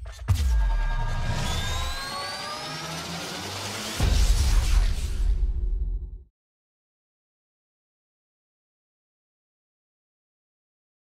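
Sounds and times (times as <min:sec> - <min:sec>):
sudden loud hit: 0:04.0 - 0:06.2.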